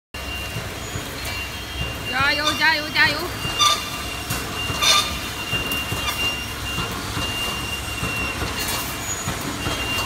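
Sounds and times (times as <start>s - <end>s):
factory floor rumble and hiss: 0.2s - 10.0s.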